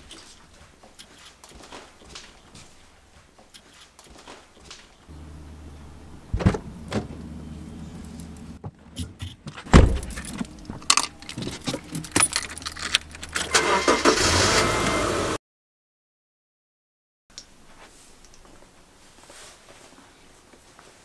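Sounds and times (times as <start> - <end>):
car engine starting: 5.1 - 8.6, 9.8 - 15.4
car door knocks: 6.3 - 7.1
keys jingling: 9.0 - 13.6.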